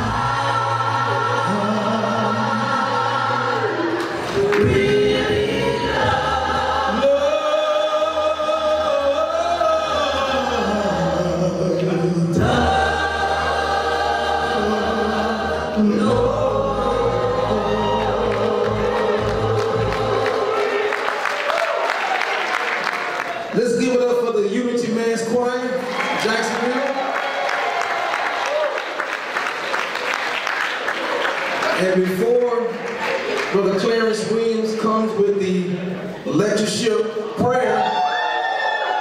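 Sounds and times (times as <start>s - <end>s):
choir singing a hymn a cappella: 0.0s - 21.5s.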